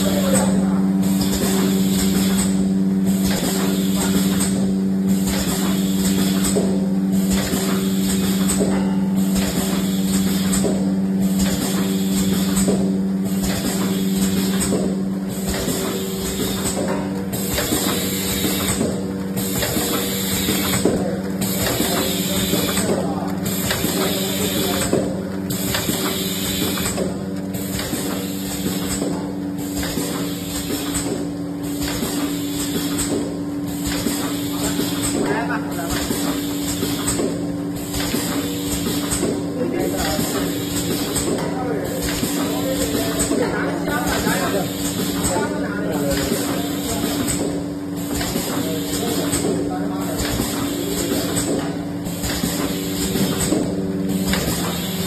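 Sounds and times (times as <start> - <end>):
machine hissing: 0.0 - 8.6, 9.2 - 55.0
machine humming: 0.0 - 55.0.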